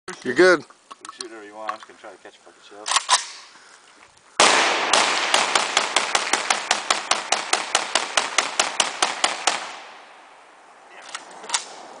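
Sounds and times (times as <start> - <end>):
rifle rapid fire: 4.4 - 9.9
gunshot echo: 4.4 - 10.0.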